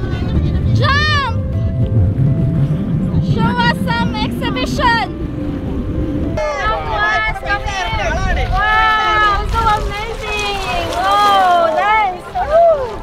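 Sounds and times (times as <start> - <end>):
motorboat engine: 0.0 - 8.4
water rumbling: 0.0 - 13.0.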